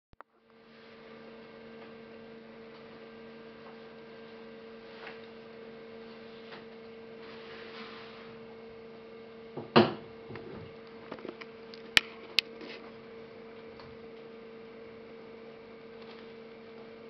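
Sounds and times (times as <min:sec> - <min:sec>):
steady electrical hum: 0:00.2 - 0:17.0.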